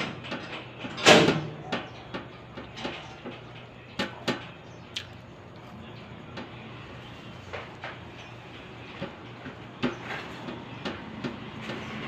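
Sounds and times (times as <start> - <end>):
chewing and mouth smacks: 4.9 - 5.2.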